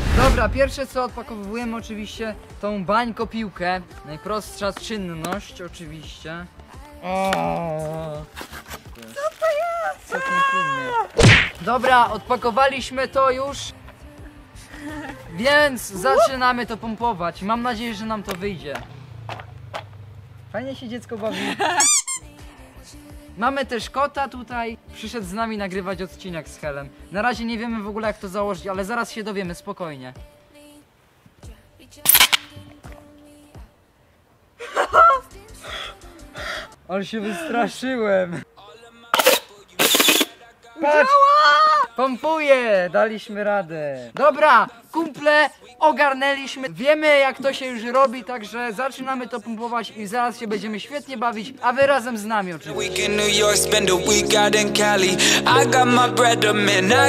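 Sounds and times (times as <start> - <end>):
laughter: 21.3 - 22.0, 34.6 - 35.3
high-pitched shriek: 21.8 - 22.3.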